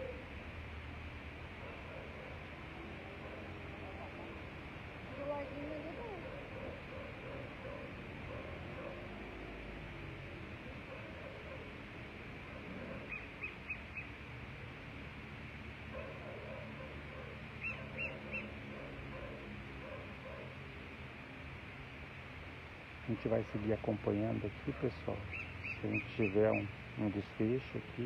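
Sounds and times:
low background noise: 0.0s - 28.0s.

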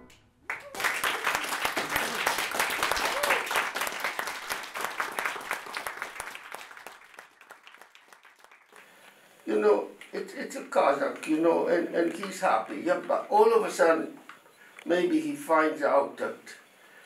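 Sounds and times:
small audience clapping: 0.4s - 11.4s.

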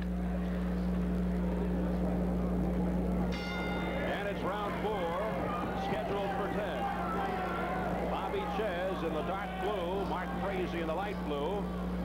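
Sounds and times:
arena crowd noise: 0.0s - 12.0s
steady low hum: 0.0s - 12.0s
boxing ring bell ringing: 3.3s - 7.0s.

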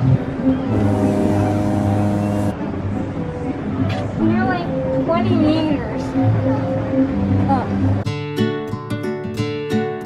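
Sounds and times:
sustained organ-like chord: 0.7s - 2.6s.

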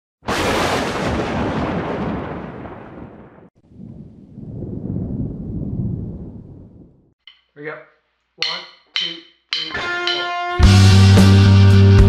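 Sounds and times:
loud thunder-like crack: 0.3s - 7.0s.

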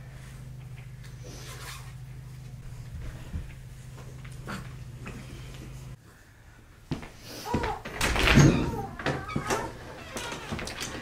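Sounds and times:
door clatter: 7.9s - 11.0s.

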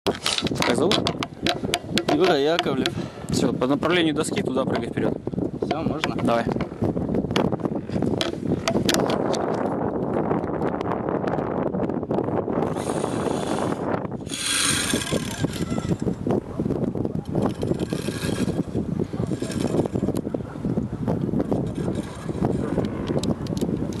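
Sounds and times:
rope clicks and rattles: 0.1s - 3.0s.

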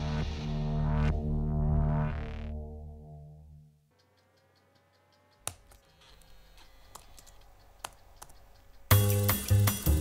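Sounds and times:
sustained synthesized tone: 0.0s - 5.4s
keystroke ticking and clicks: 4.1s - 9.3s.

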